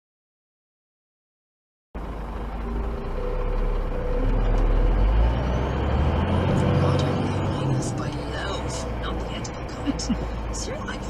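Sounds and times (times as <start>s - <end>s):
faint rising whine: 2.0s - 9.3s
lorry diesel engine rumble: 2.0s - 11.0s.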